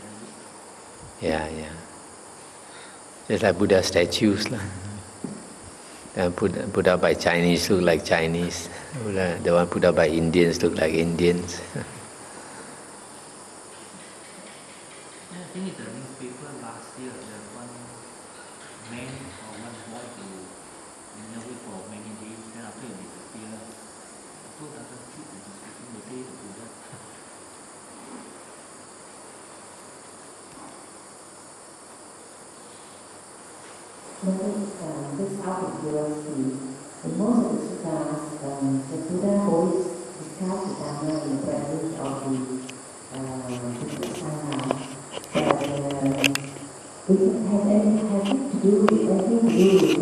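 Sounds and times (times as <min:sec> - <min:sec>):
crickets chirping: 0:00.0 - 0:50.0.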